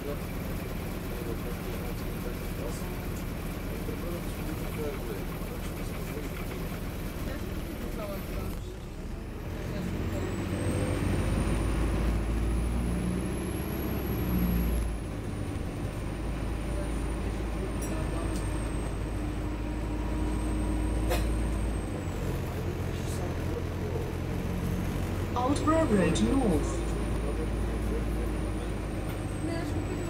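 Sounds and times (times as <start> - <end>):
bus engine drone: 0.0 - 30.0
road noise: 0.0 - 30.0.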